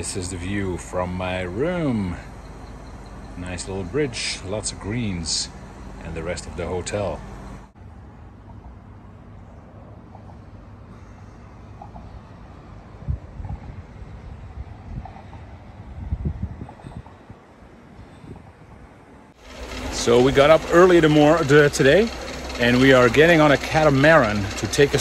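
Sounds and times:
low outdoor rumble: 0:19.0 - 0:25.0.

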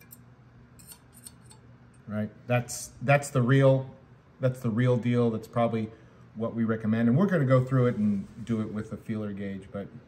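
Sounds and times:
faint metallic ticks and scrapes: 0:00.0 - 0:01.7.

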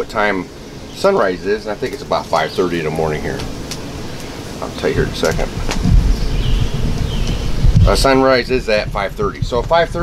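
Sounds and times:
wind rumble on microphone: 0:00.0 - 0:10.0
man saying uh: 0:04.6 - 0:05.6.

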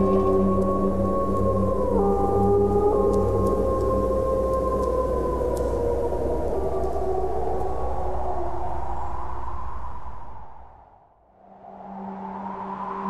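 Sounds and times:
wolves howling: 0:00.0 - 0:09.9
steady low drone: 0:00.0 - 0:10.8.

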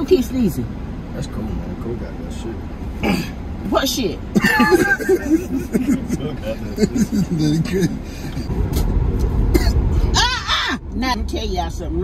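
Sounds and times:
car interior rumble: 0:00.0 - 0:12.0.

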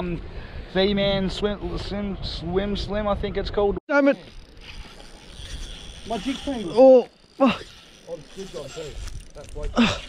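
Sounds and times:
fishing reel drag buzzing: 0:04.2 - 0:10.0.

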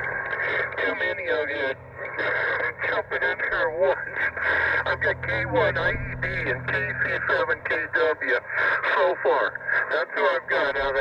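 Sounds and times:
man's voice over radio speaker: 0:00.0 - 0:11.0
steady low hum: 0:00.0 - 0:11.0.

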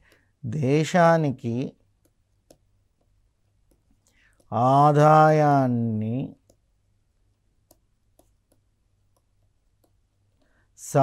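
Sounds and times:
man's voice: 0:00.5 - 0:01.7, 0:04.5 - 0:06.4
stylus tapping on pen tablet: 0:01.9 - 0:04.6, 0:06.4 - 0:06.7, 0:07.3 - 0:10.6.

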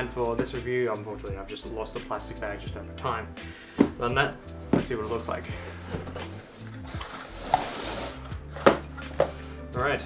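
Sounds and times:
soft background music: 0:00.0 - 0:10.0
cardboard lid scraping: 0:05.7 - 0:09.3.

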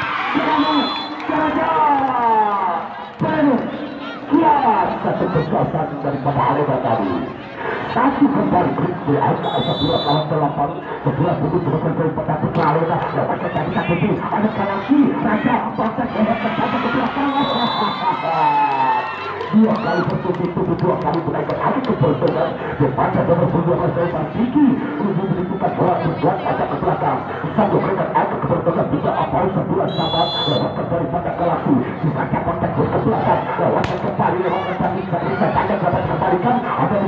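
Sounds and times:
crowd talking and shouting: 0:00.0 - 0:37.0
referee's whistle: 0:00.6 - 0:01.2, 0:09.4 - 0:10.3, 0:17.3 - 0:18.1, 0:29.9 - 0:30.8
ball slap on serve: 0:33.8 - 0:34.2.

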